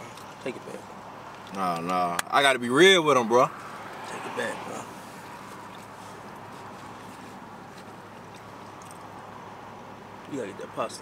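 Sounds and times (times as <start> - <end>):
quiet chewing: 5.0 - 9.4.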